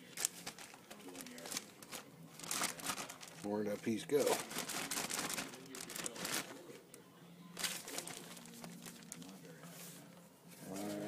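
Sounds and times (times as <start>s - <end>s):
plastic bag crinkling: 0.0s - 6.8s, 7.6s - 9.6s.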